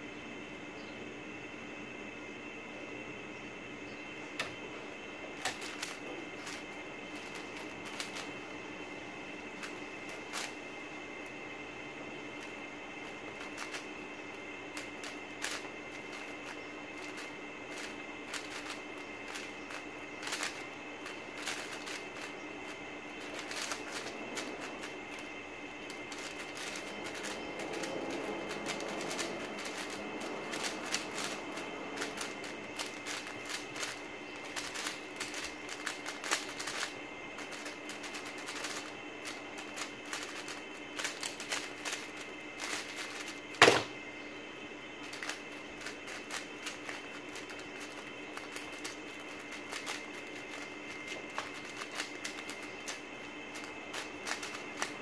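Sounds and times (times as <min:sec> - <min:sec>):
puzzle cube clicking: 0:05.4 - 0:06.6, 0:07.2 - 0:08.3, 0:09.6 - 0:10.6, 0:13.4 - 0:13.8, 0:14.8 - 0:16.3, 0:17.0 - 0:22.3, 0:23.2 - 0:25.2, 0:25.9 - 0:31.4, 0:32.0 - 0:43.8, 0:45.1 - 0:54.9.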